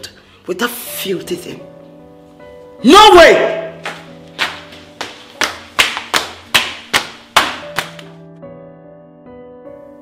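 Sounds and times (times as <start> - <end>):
soft background music: 0.0 - 10.0
hurried footsteps on stairs: 3.8 - 8.1.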